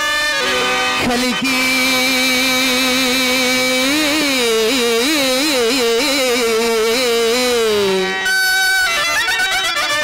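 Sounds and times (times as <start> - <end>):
man singing a long note: 0.4 - 8.1.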